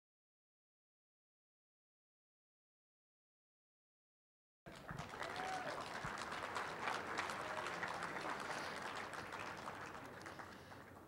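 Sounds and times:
audience applauding: 4.7 - 11.0.

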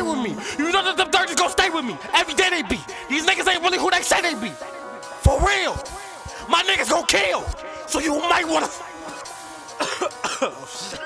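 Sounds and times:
hip-hop beat: 0.0 - 11.0
man coughing: 8.5 - 11.0.

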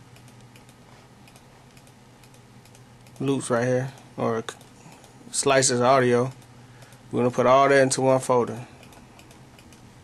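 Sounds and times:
low steady hum: 0.0 - 10.0
computer keys clicking: 0.2 - 3.4, 8.8 - 9.9.

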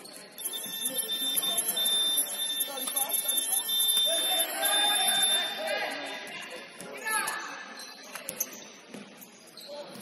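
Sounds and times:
voices: 0.1 - 8.8
high-pitched electronic alarm tone: 0.4 - 5.9.

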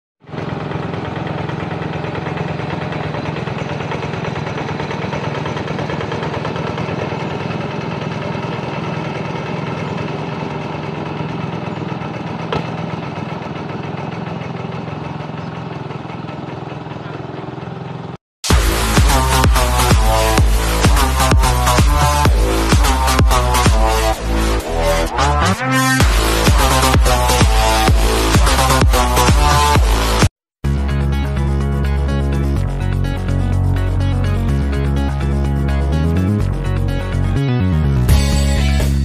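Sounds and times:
hand tractor engine running: 0.3 - 25.0.

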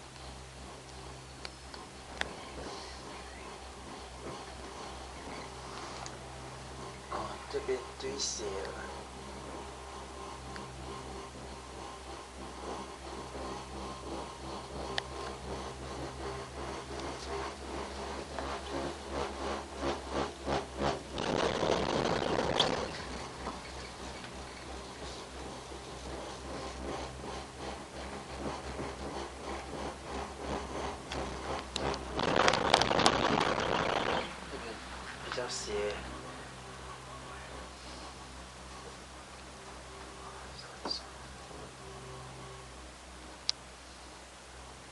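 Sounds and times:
gondola cabin hum: 0.0 - 44.9
loud clatter over tower sheaves: 0.0 - 44.9
rattle of ticks: 0.0 - 44.9.

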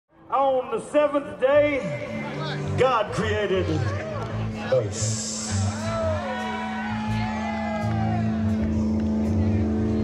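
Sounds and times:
blues-rock band playing: 0.8 - 10.0
wailing sliding guitar line: 2.2 - 10.0.

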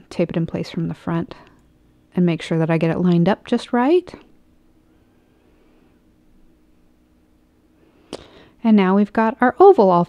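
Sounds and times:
speech: 0.0 - 1.5, 2.2 - 4.3, 8.6 - 10.0
faint steady hum: 0.0 - 10.0.

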